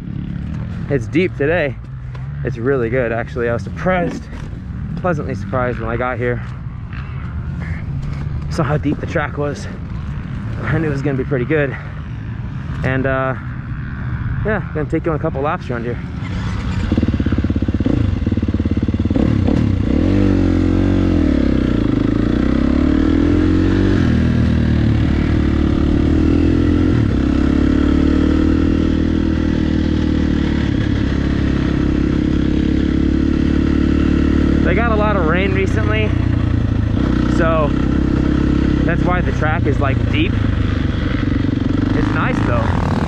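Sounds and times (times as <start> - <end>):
dirt bike engine revving: 0.0 - 43.0.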